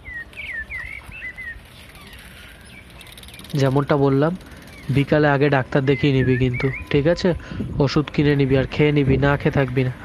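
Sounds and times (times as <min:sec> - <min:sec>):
bird chirping: 0:00.0 - 0:07.2.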